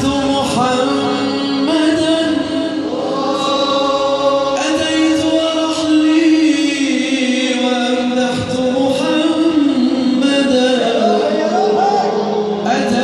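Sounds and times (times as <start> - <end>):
male choir chanting over a pa: 0.0 - 13.0.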